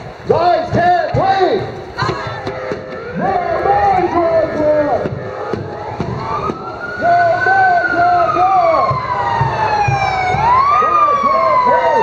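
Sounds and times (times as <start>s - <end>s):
ambulance siren wailing: 2.2s - 12.0s.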